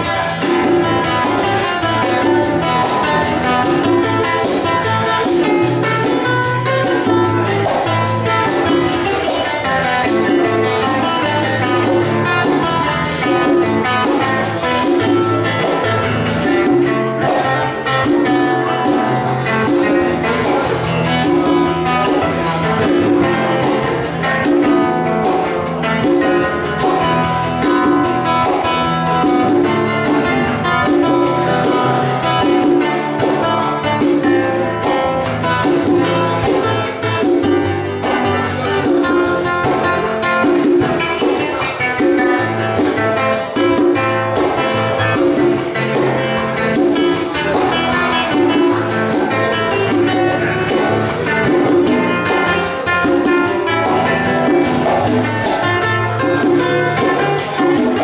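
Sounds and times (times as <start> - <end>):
congas: 0.0 - 58.0
guitar playing tune: 0.0 - 58.0
low drum pattern: 0.0 - 58.0.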